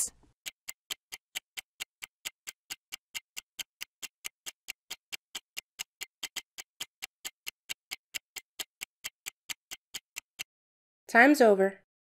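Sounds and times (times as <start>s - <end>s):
countdown timer ticking: 0.0s - 10.5s.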